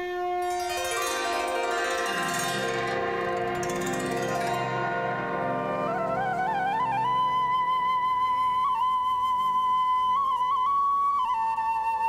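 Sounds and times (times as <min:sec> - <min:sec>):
bell-like chimes: 0:00.4 - 0:07.4
held notes background music: 0:00.4 - 0:07.9.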